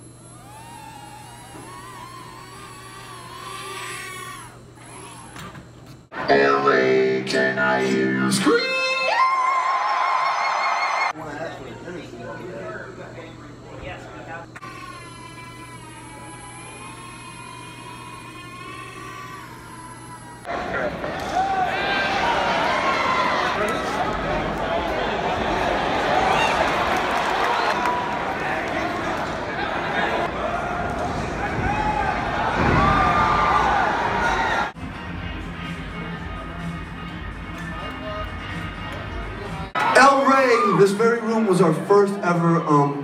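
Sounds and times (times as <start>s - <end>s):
drone motors whining: 0.0s - 6.1s, 14.6s - 20.5s.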